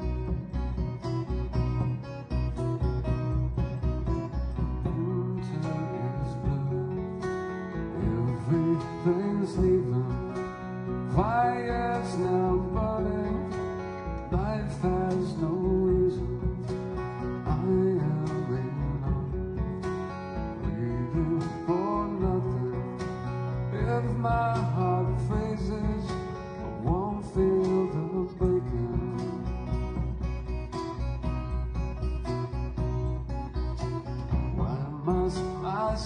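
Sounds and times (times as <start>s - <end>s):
acoustic guitar plucked: 0.0s - 36.0s
steady bass: 0.0s - 36.0s.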